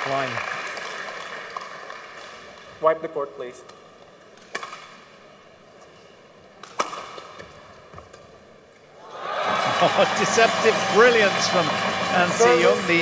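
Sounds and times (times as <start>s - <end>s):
racket hitting shuttlecock: 6.6s - 7.5s
crowd cheering: 9.0s - 13.0s.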